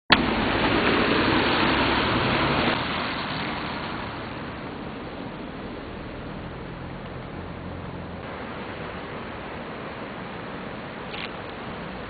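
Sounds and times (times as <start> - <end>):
tyres hissing on wet road: 0.1 - 12.0.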